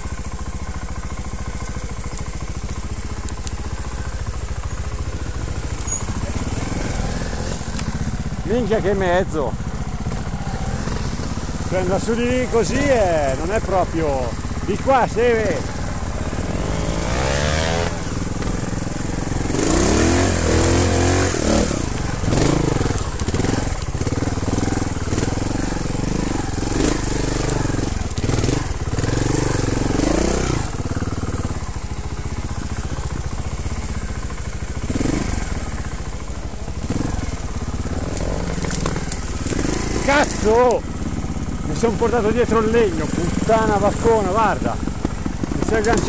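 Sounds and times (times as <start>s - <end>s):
motorcycle engine revving: 0.0s - 46.0s.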